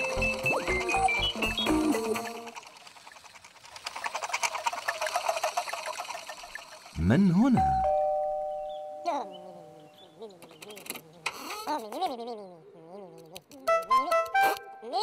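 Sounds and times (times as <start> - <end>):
wavering cartoon vocal sounds: 9.1 - 14.2.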